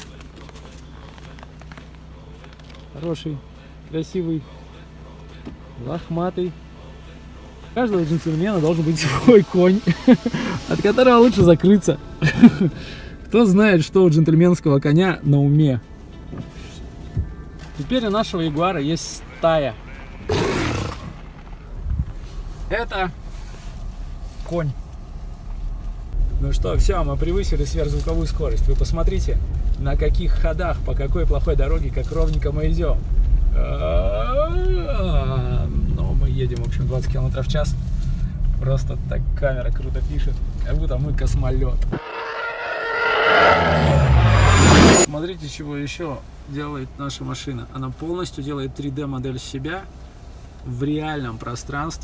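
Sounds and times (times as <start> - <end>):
howling engine whine: 15.9 - 22.6, 41.7 - 45.1
deep rumble: 19.8 - 22.6, 41.8 - 45.1
horse snorting: 20.2 - 21.4.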